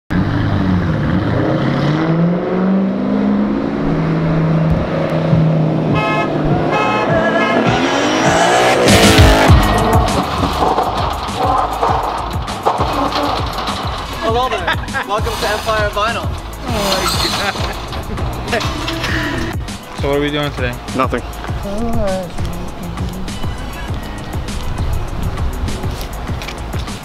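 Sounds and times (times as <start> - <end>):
cars accelerating past: 0.1 - 14.3
music with a beat: 5.3 - 12.9, 17.7 - 27.0
car horn: 5.8 - 10.3.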